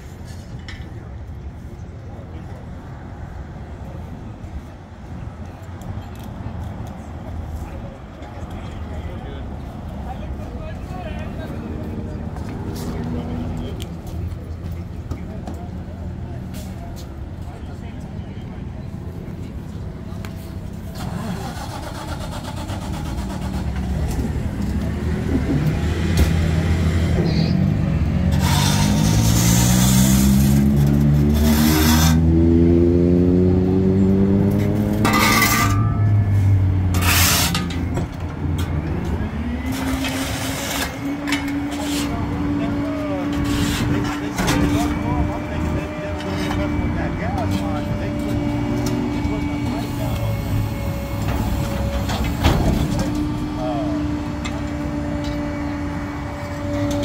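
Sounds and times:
garbage truck engine revving: 20.9 - 37.8.

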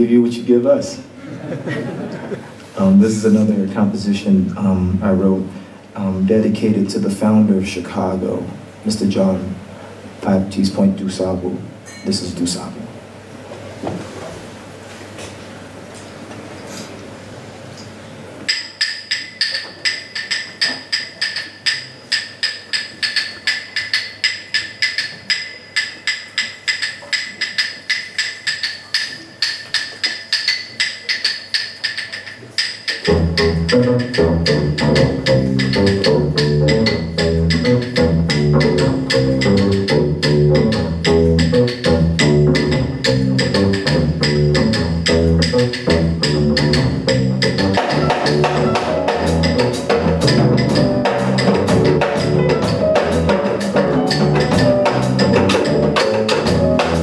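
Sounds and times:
drums: 18.3 - 57.0
high-pitched hand percussion: 18.5 - 57.0
double bass groove: 32.6 - 57.0
piano: 33.1 - 57.0.

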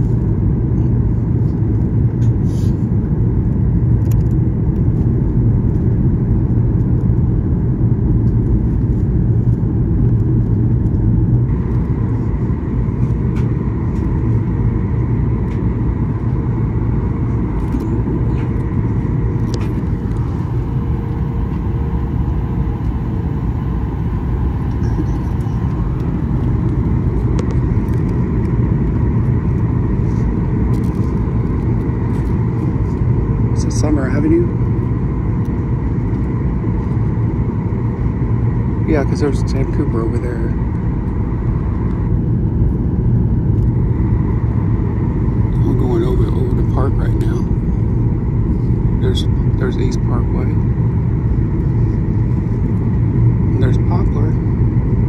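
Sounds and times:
airliner cabin roar: 0.0 - 55.0.

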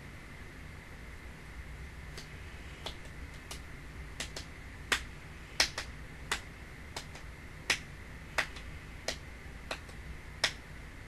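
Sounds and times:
faint steady hum: 0.0 - 11.0
sharp short clicks: 4.2 - 10.6.

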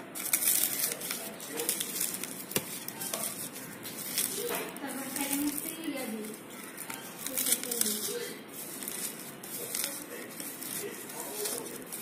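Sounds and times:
dry chillies crackling: 0.0 - 12.0.

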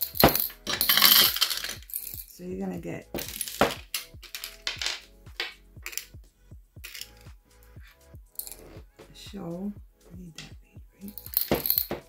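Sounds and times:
plastic beads clinking in jar: 0.0 - 2.4, 3.1 - 6.2, 6.8 - 7.3, 8.4 - 8.7, 11.0 - 12.0
soft background music: 0.0 - 12.0.

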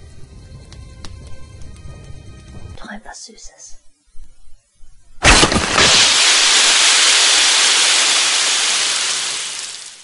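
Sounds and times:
rushing hiss: 5.3 - 10.0.

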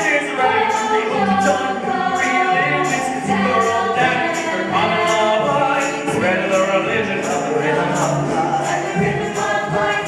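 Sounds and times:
chorus singing show tune: 0.0 - 10.0.

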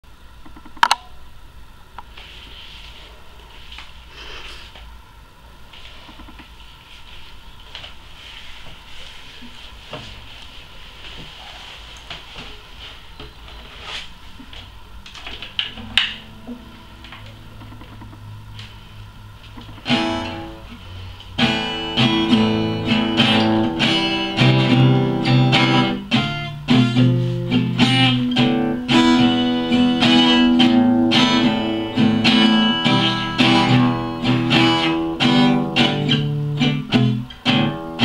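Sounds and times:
rustling and light knocks: 5.7 - 15.9
guitar strings ringing faintly: 15.7 - 18.5.

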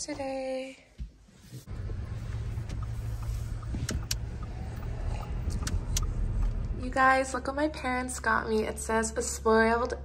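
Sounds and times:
car running low rumble: 1.7 - 10.0
light clicks: 2.6 - 4.6, 5.2 - 6.7.

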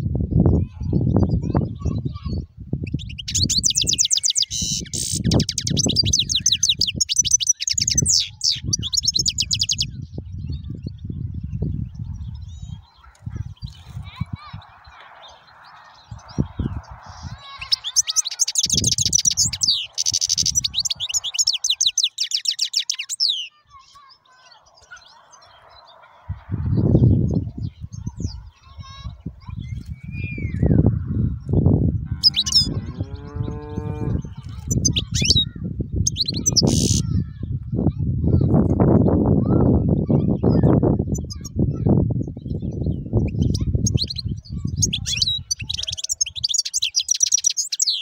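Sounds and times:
goldfinch twittering song: 0.4 - 37.4, 38.5 - 48.0
bird chirps: 0.7 - 37.2, 39.7 - 41.6, 42.2 - 48.0.

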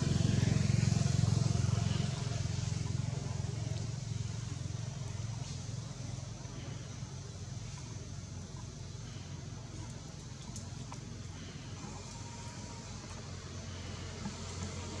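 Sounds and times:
constant low hum: 0.0 - 15.0.

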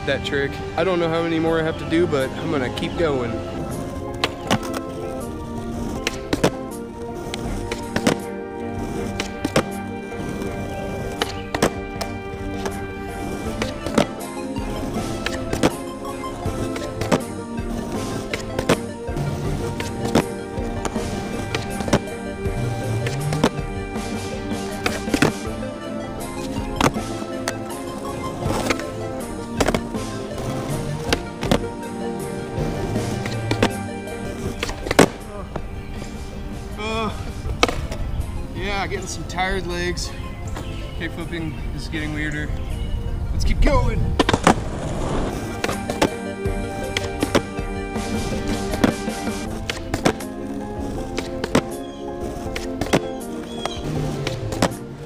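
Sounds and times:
background music: 0.0 - 55.0
skateboard clacking on asphalt: 0.8 - 39.4, 40.4 - 55.0.

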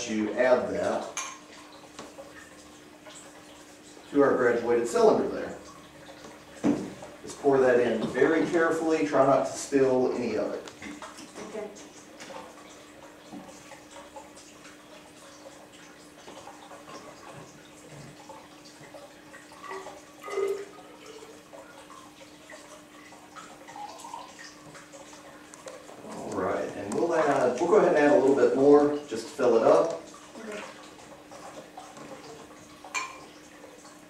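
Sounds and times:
liquid trickling and dripping: 0.0 - 34.0.

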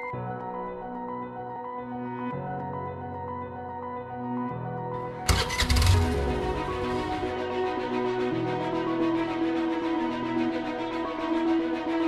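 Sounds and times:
background music: 0.0 - 12.0
motor scooter engine starting: 5.3 - 7.3.

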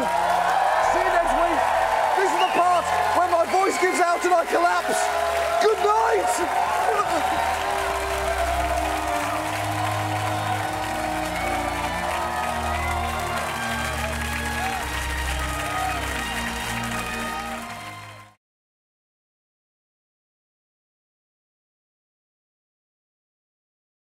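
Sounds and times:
theme music with held bass notes: 0.0 - 18.3
studio audience applause: 0.0 - 18.4.

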